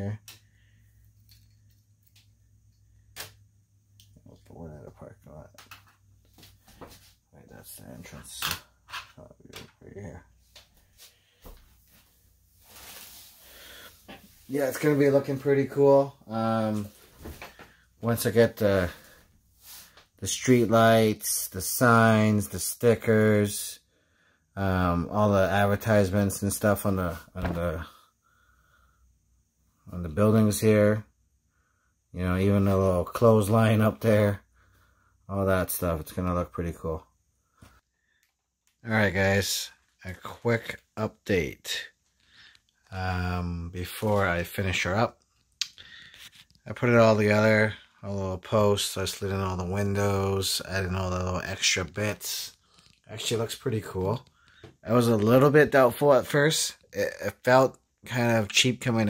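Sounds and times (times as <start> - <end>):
man speaking: 0.0 - 0.3, 4.2 - 5.7, 7.3 - 10.4, 14.4 - 17.0, 18.0 - 19.2, 20.2 - 23.8, 24.6 - 28.0, 29.9 - 31.1, 32.1 - 34.4, 35.3 - 37.1, 38.8 - 42.0, 42.9 - 45.2, 46.6 - 59.0.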